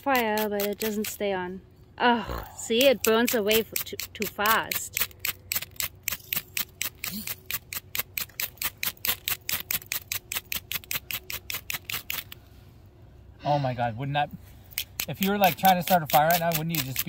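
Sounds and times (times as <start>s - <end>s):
ferro rod scraped with striker: 14.9s - 17.0s.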